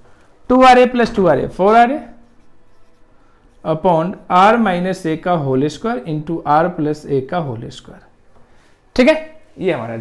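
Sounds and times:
man talking: 0:00.5 - 0:02.2, 0:09.0 - 0:10.0
marker writing on whiteboard: 0:00.9 - 0:05.4.

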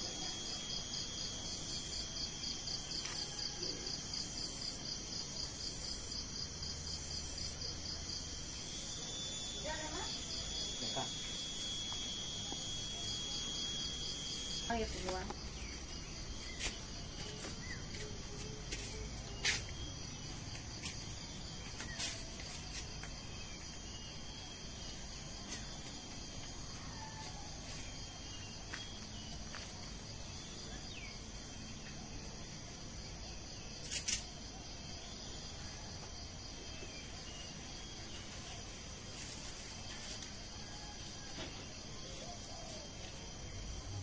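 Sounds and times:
insects chirring: 0:00.0 - 0:44.0.

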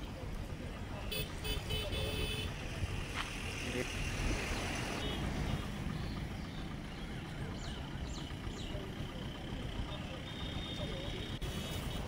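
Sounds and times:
vehicle running: 0:00.0 - 0:12.0.

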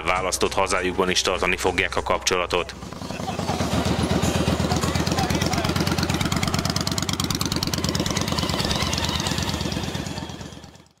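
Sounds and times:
motorcycle engines at low speed: 0:00.0 - 0:11.0.

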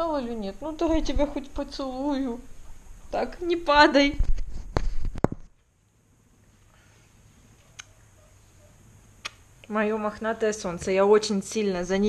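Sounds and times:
faint room hum: 0:00.0 - 0:12.0
sharp clicks: 0:09.2 - 0:09.4.

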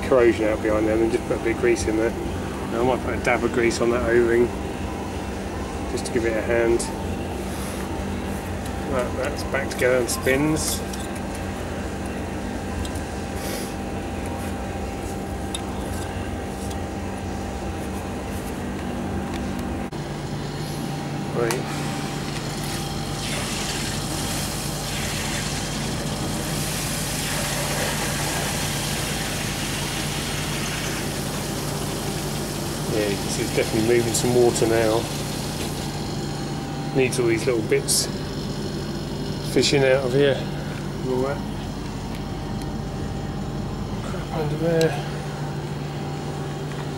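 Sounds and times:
machinery hum: 0:00.0 - 0:46.9
water rushing through pump: 0:23.2 - 0:35.8.

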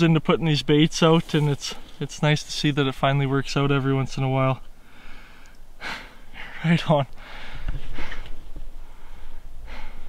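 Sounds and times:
person breathing: 0:04.8 - 0:06.6, 0:07.2 - 0:10.0.

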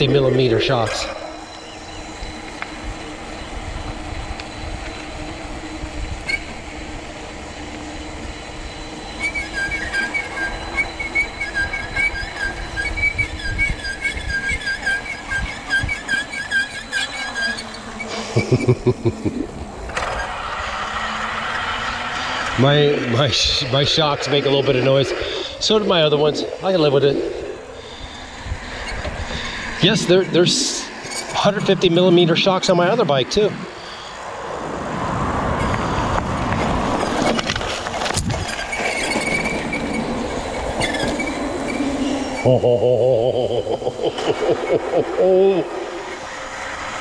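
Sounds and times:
bike suspension squeaking: 0:00.0 - 0:34.3, 0:35.4 - 0:47.0
bike rolling and wind noise: 0:00.0 - 0:47.0
bike tyres rumbling on concrete: 0:33.8 - 0:42.5.

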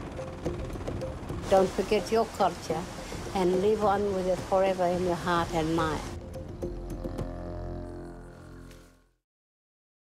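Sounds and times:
background music with low drone: 0:00.0 - 0:09.2.

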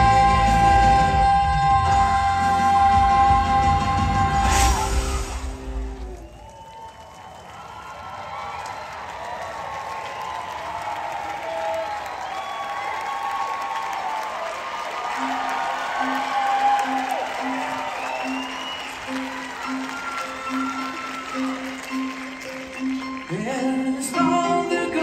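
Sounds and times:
rock band playing: 0:00.0 - 0:06.2
audience applauding and cheering: 0:00.0 - 0:25.0.

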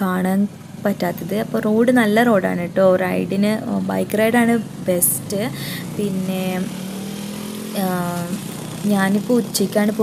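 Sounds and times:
person talking: 0:00.0 - 0:06.7, 0:07.8 - 0:10.0
motorcycle engine running: 0:00.0 - 0:10.0.

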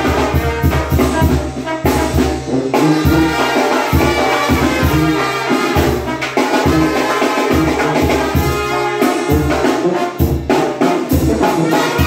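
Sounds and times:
drums keeping the beat: 0:00.0 - 0:12.0
trumpet and saxophone notes: 0:00.0 - 0:12.0.

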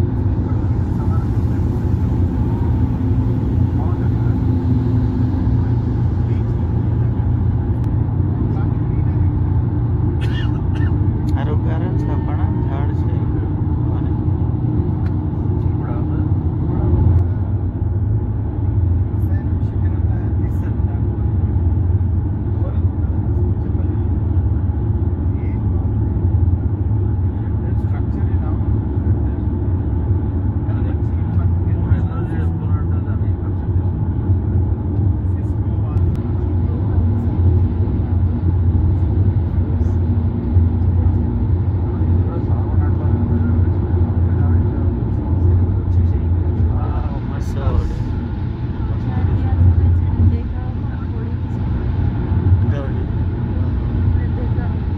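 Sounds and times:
car cabin road noise: 0:00.0 - 0:54.9.

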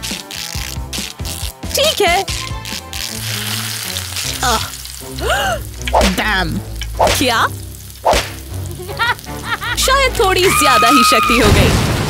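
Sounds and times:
background music with low bass: 0:00.0 - 0:10.4
electric crackling and sizzling: 0:00.0 - 0:12.0.

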